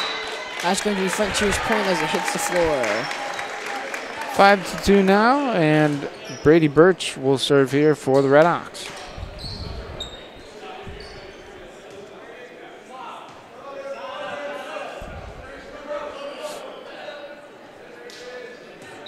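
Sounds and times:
murmur of spectators talking: 0.0s - 19.0s.

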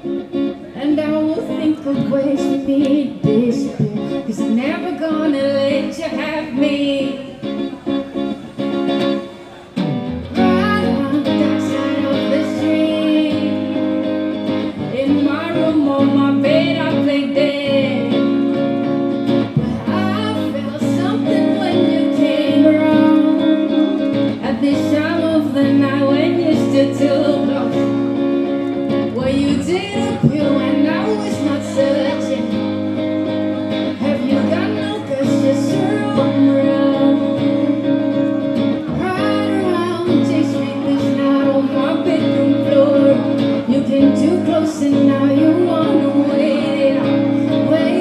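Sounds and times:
electric guitar chords: 0.0s - 48.0s
woman singing: 0.7s - 8.0s, 10.3s - 48.0s.

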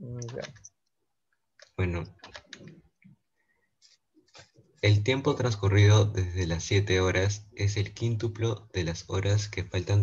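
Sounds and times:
young man speaking: 1.7s - 2.8s, 4.8s - 10.0s.

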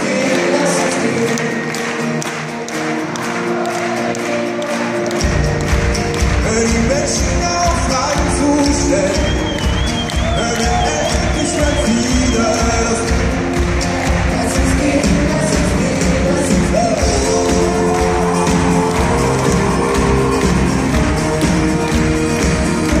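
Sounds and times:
person singing: 0.0s - 1.8s, 6.2s - 23.0s
acoustic guitars: 0.0s - 23.0s
audience noise: 0.0s - 23.0s.

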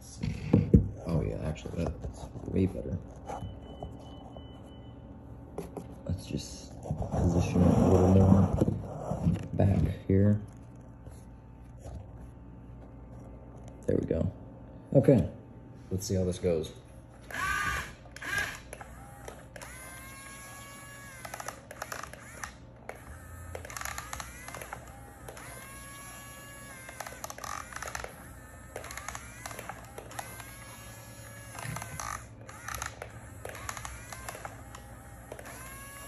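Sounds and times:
electric motors whining: 17.1s - 36.0s.

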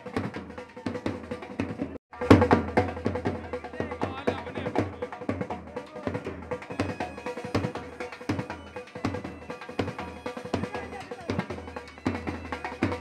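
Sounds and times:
fast loud drumming: 0.0s - 13.0s
band music: 2.2s - 13.0s.

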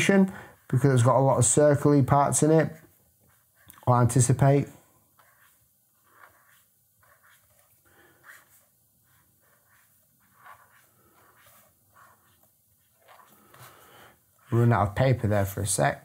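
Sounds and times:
pen tip scratching paper: 5.2s - 13.7s.

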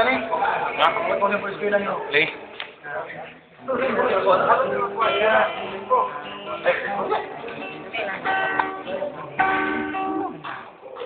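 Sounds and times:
guitar chord strummed: 4.5s - 10.9s.

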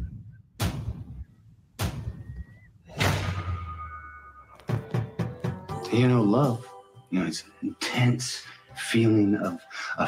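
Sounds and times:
heavy boom hits: 3.0s - 4.0s.

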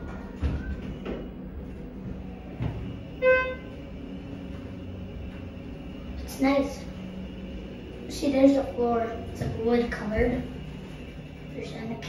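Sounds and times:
elevator car humming: 0.0s - 12.0s.

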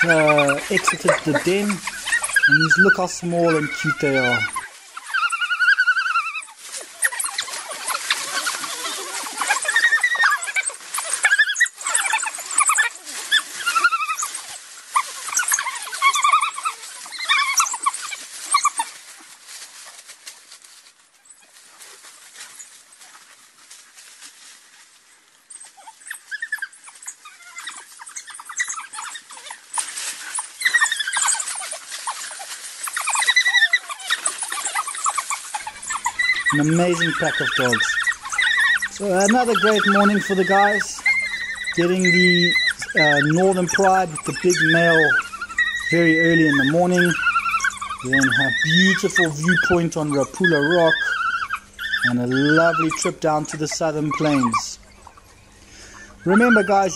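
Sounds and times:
wild dogs twittering calls: 0.0s - 20.1s, 25.4s - 56.9s.

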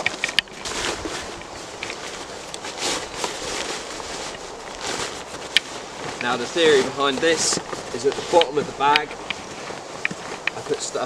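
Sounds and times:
tarp rustling and crinkling: 0.0s - 11.0s.

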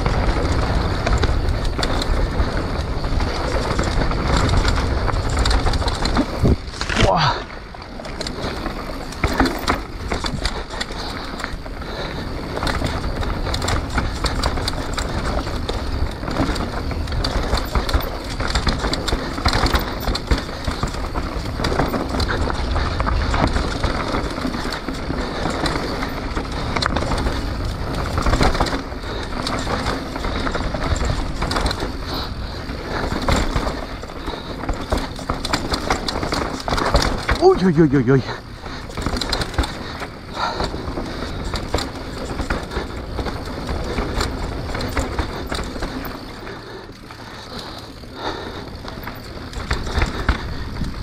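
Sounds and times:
bike tyres crunching over dirt: 0.0s - 51.0s
chain and frame rattling: 0.0s - 51.0s.

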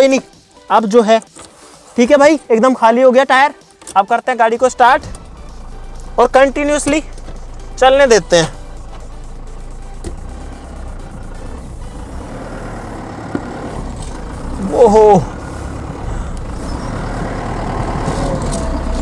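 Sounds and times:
car engine pulling away: 4.6s - 19.0s.

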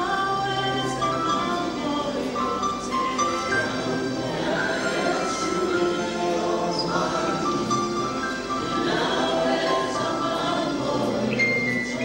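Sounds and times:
group singing worship song: 0.0s - 12.0s.

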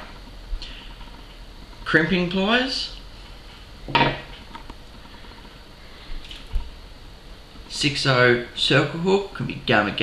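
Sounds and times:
pliers knocking on table: 3.9s - 4.3s.

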